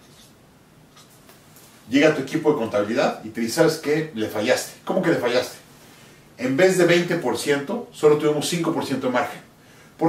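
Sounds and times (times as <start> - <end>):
man talking: 1.9 - 5.7, 6.4 - 10.0.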